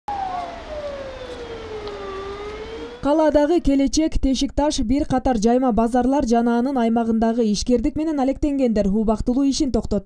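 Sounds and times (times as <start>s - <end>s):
fire truck siren wailing: 0.1s - 3.6s
low traffic rumble: 0.1s - 4.0s.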